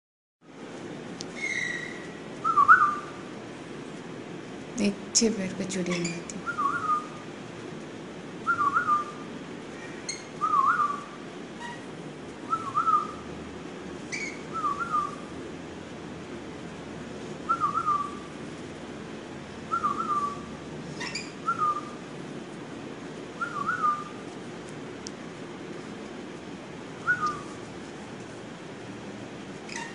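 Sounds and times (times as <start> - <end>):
parrot chirps: 1.3 - 3.1, 9.8 - 11.9, 14.1 - 15.2, 21.0 - 22.0, 29.7 - 29.9.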